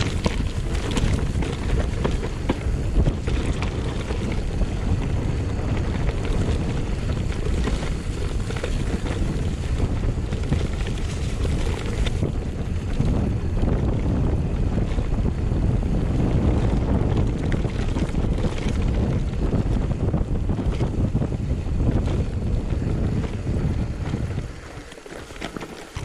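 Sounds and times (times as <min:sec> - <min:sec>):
bike rattles and knocks: 0:00.0 - 0:26.0
wind buffeting microphone: 0:00.0 - 0:26.0.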